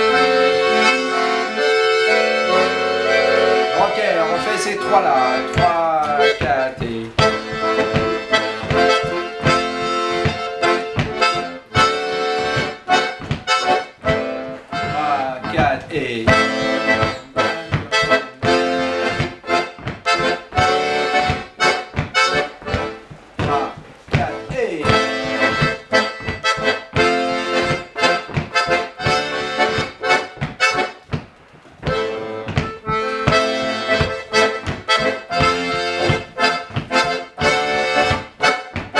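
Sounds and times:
button accordion dance tune: 0.0s - 38.9s.

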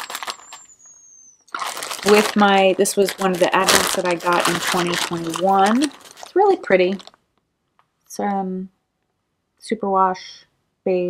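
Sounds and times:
plastic bag crinkling: 0.0s - 0.7s, 1.5s - 7.2s.

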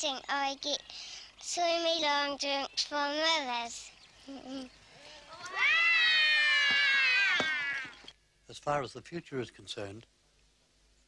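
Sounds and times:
cat meowing: 5.3s - 7.9s.

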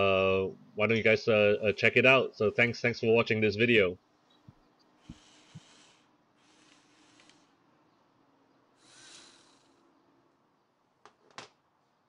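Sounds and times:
low steady hum: 0.0s - 11.1s
soft exhale: 5.0s - 7.7s, 8.8s - 9.9s.

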